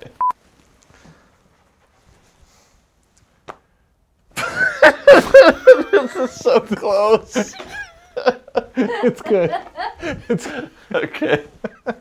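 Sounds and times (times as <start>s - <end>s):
loud laughter: 4.4s - 12.0s.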